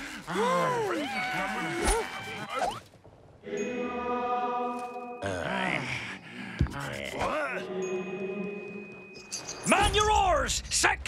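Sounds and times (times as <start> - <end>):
cartoon voices groaning: 0.2 - 2.8.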